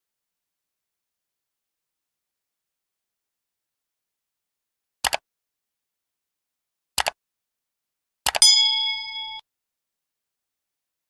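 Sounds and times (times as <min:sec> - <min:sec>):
mouse clicks: 0:05.0 - 0:05.2
notification bell ding: 0:08.4 - 0:09.4.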